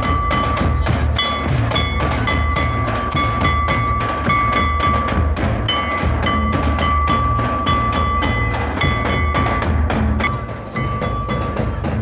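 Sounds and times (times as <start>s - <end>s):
stick-beaten drums in steady rhythm: 0.0s - 12.0s.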